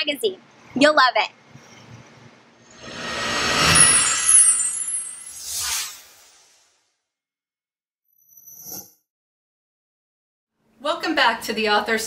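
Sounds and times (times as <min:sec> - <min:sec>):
rising whoosh: 0:02.6 - 0:06.8.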